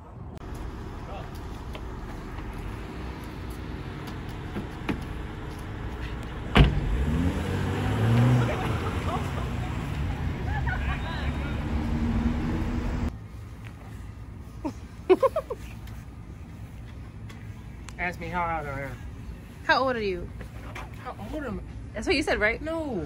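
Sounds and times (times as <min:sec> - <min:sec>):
traffic rumble: 0:00.0 - 0:23.0
wind: 0:00.0 - 0:23.0
loud thud: 0:06.5 - 0:07.0
low voices: 0:07.8 - 0:12.8.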